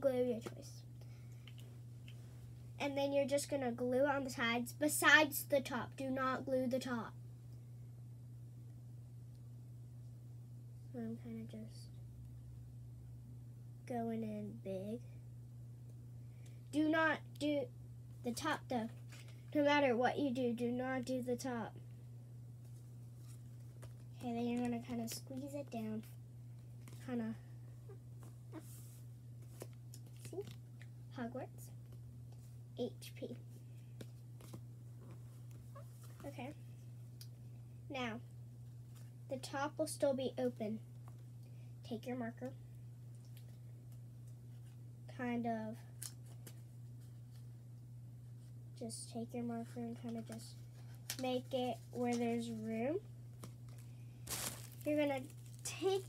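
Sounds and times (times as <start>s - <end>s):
steady low hum: 0.0s - 56.0s
paper rustling: 53.4s - 56.0s.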